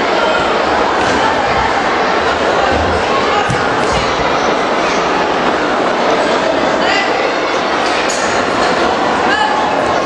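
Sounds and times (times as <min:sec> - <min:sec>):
crowd din in sports hall: 0:00.0 - 0:10.0.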